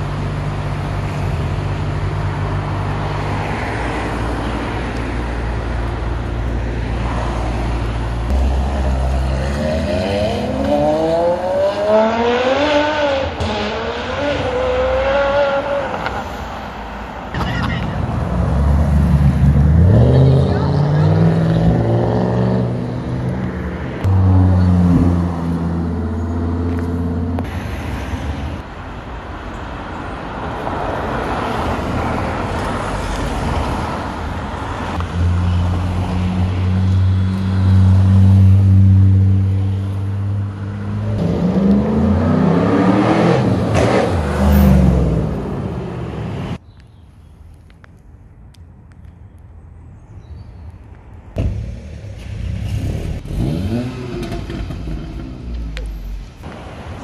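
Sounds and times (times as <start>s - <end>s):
sports car engines accelerating: 7.8s - 16.2s, 18.3s - 27.5s, 34.9s - 46.6s, 51.4s - 56.2s.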